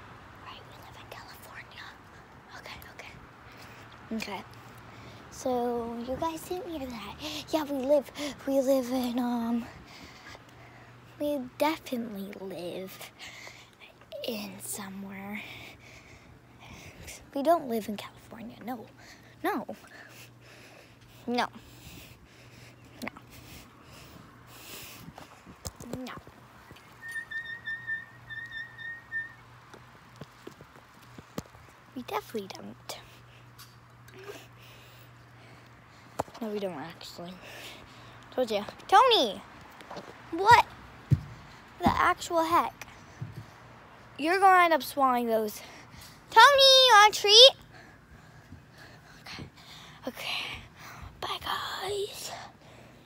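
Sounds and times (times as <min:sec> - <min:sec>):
steady low hum: 0:00.0 - 0:53.0
girl's breathy whispered speech: 0:00.4 - 0:03.2, 0:49.1 - 0:52.6
high whistle: 0:27.0 - 0:29.5.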